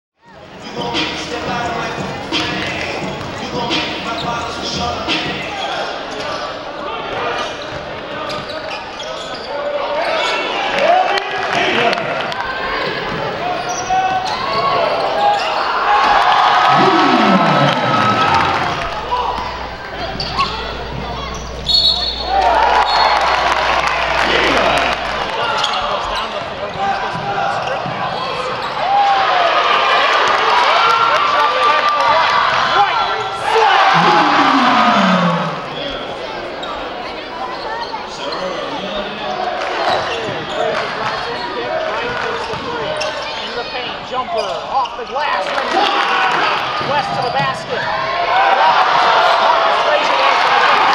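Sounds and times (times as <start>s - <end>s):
voices of players and crowd: 0.2s - 50.9s.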